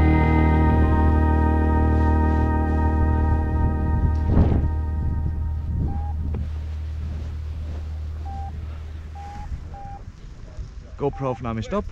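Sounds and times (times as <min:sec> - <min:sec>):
low steady rumble: 0:00.0 - 0:11.9
short electronic beeps: 0:05.9 - 0:06.2, 0:08.2 - 0:08.5, 0:09.2 - 0:10.0, 0:11.1 - 0:11.5.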